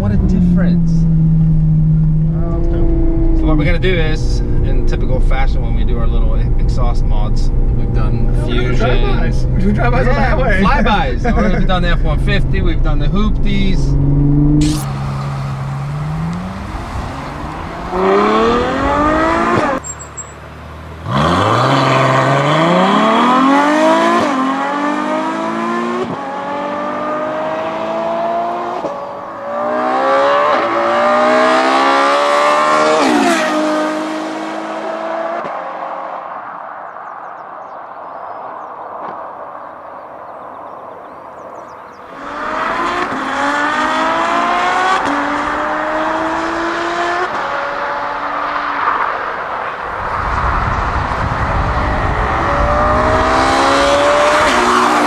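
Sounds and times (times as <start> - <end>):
car engine accelerating past: 13.4 - 19.9, 21.0 - 38.7, 40.3 - 55.0.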